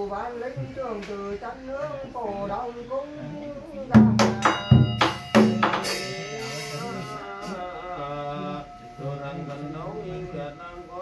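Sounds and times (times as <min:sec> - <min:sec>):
drum struck: 0:04.0 - 0:06.5
bell ringing: 0:04.1 - 0:11.0
person chanting: 0:05.8 - 0:11.0.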